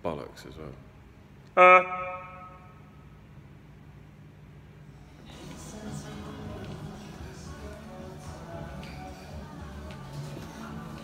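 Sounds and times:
faint steady low hum: 0:00.0 - 0:11.0
man's sung note echoing: 0:01.6 - 0:03.1.

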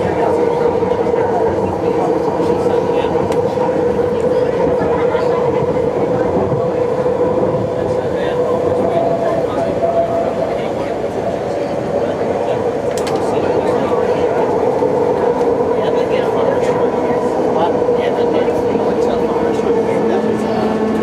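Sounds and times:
train wheels rumbling on rails: 0:00.0 - 0:21.0.

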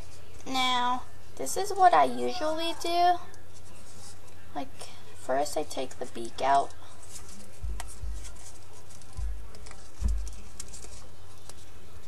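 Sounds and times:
paper rustling and crinkling: 0:03.5 - 0:04.5, 0:05.8 - 0:12.0.

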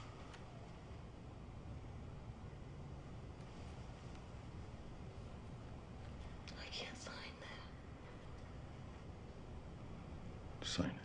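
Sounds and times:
low steady hum: 0:00.0 - 0:11.0
breathy whisper: 0:06.5 - 0:07.8.

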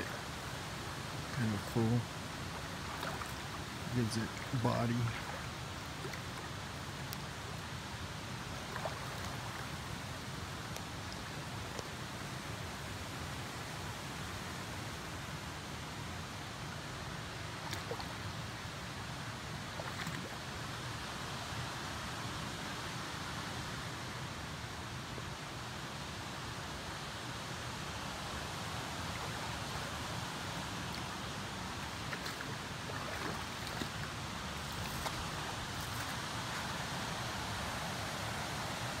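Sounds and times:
creek water rushing over boulders: 0:00.0 - 0:39.0.

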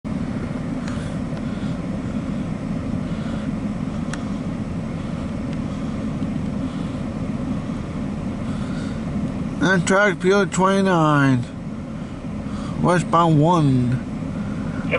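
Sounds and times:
engine rumble inside vehicle: 0:00.0 - 0:14.9.

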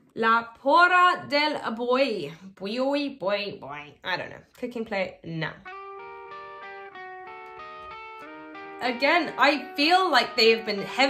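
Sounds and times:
quiet picked guitar riff: 0:05.7 - 0:10.9.

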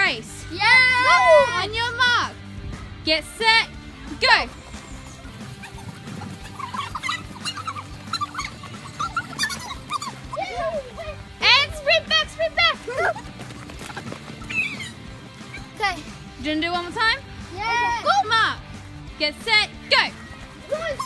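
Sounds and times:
background music: 0:00.0 - 0:21.0
children shouting and squealing: 0:00.5 - 0:01.8, 0:04.8 - 0:16.2, 0:20.5 - 0:21.0.

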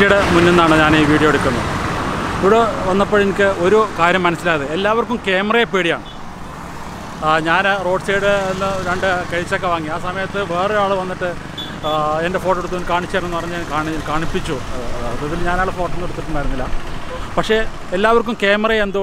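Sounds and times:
man talking: 0:00.0 - 0:01.6, 0:02.4 - 0:06.1, 0:07.2 - 0:19.0
road traffic noise: 0:00.0 - 0:19.0
vehicles passing: 0:00.0 - 0:19.0.

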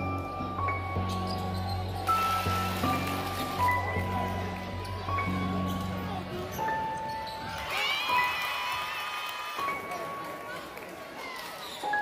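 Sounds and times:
sneakers squeaking on hardwood: 0:05.6 - 0:07.7.

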